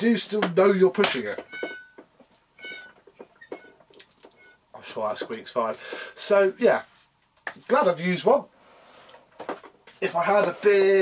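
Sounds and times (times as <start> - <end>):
vacuum cleaner squeaking: 1.4 - 2.0, 2.6 - 4.6.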